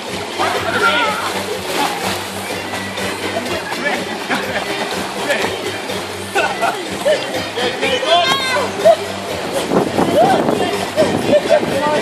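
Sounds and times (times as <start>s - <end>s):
water splashing in a pool: 0.0s - 12.0s
people shouting: 7.1s - 9.0s.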